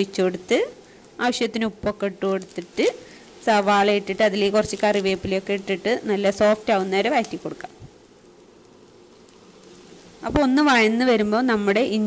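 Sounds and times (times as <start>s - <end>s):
woman speaking: 0.0s - 7.7s, 10.2s - 12.0s.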